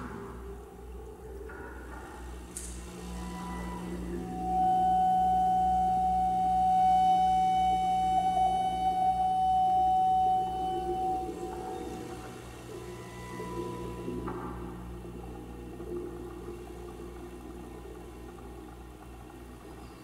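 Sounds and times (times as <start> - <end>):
steady low drone: 2.3 - 19.6
loud sustained high tone: 3.0 - 14.4.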